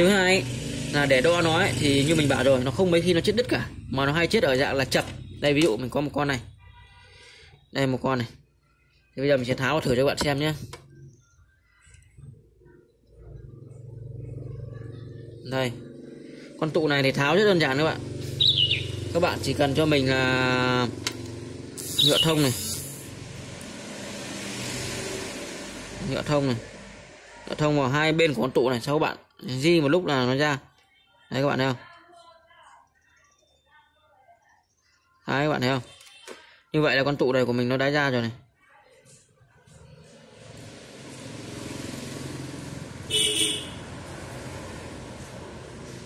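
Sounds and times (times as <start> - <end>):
road traffic rushing: 0.0 - 29.0, 39.7 - 46.0.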